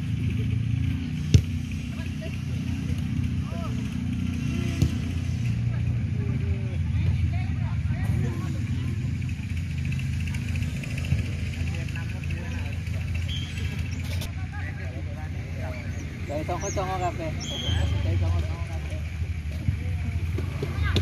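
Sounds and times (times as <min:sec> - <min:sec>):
football kicked thud: 0:01.3 - 0:01.6.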